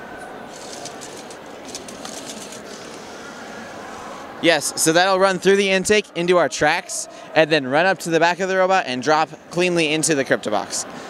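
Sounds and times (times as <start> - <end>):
steady background noise: 0.0 - 11.0
robot intake wheels and conveyor: 0.5 - 3.1.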